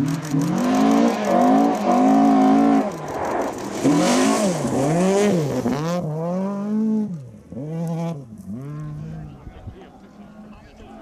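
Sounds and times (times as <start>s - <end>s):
rally car engine revving: 0.0s - 9.6s.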